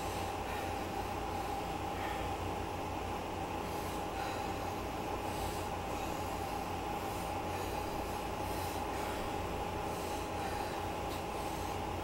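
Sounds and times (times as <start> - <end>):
elliptical trainer whine and rumble: 0.0 - 12.0.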